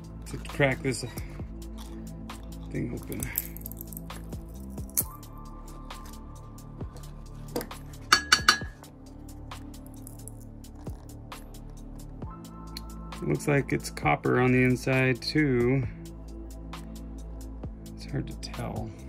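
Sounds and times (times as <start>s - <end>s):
background music: 0.0s - 19.0s
pliers clinking on metal chip: 3.0s - 5.1s, 8.1s - 8.8s.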